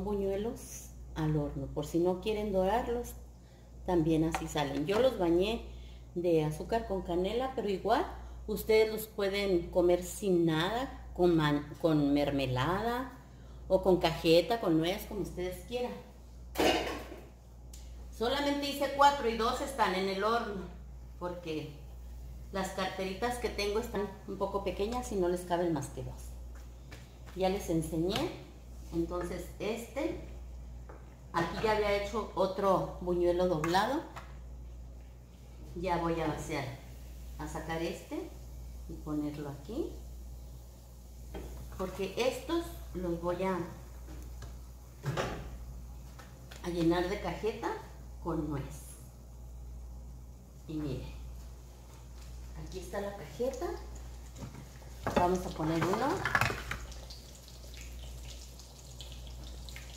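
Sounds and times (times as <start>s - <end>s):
low steady hum: 0.0s - 59.9s
kitchenware clatter: 16.6s - 17.3s, 55.0s - 56.9s.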